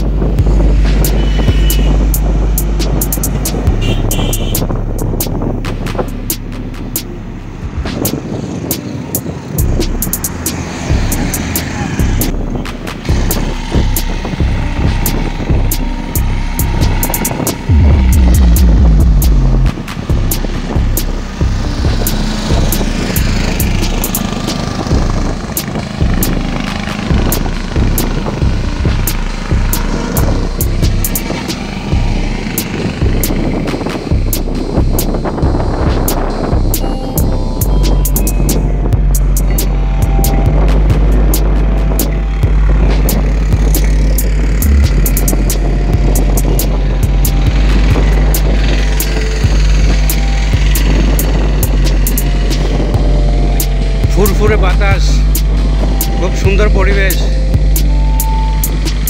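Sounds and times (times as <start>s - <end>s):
loud low rumble: 0.0s - 8.8s, 9.4s - 59.0s
traffic passing close: 0.0s - 59.0s.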